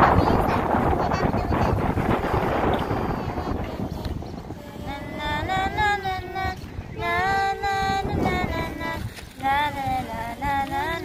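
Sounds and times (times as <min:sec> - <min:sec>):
wind buffeting microphone: 0:00.0 - 0:11.0
person singing: 0:02.1 - 0:11.0.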